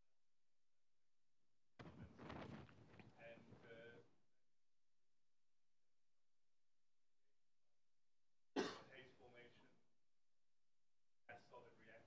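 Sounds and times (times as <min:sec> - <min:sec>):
person coughing: 0:08.6 - 0:08.9.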